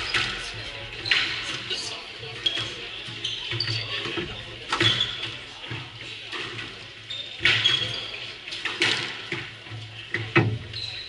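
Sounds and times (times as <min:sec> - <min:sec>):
shoes squeaking on wooden floor: 0:01.1 - 0:05.5.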